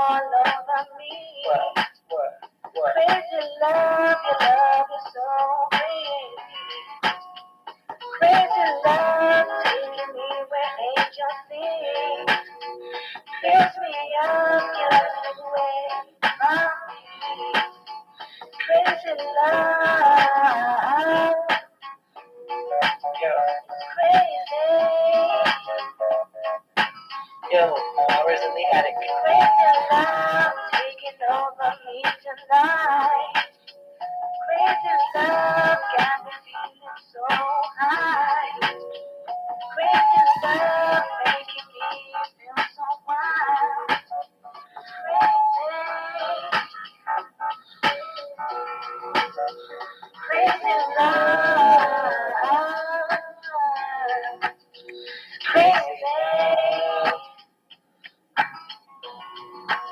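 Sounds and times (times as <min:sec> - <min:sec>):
wavering melodic lead music: 0:00.0 - 0:59.9.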